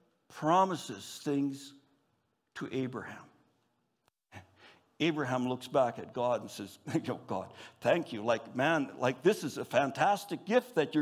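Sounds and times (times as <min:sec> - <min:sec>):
man speaking: 0:00.3 - 0:01.8, 0:02.5 - 0:03.4, 0:04.3 - 0:11.0.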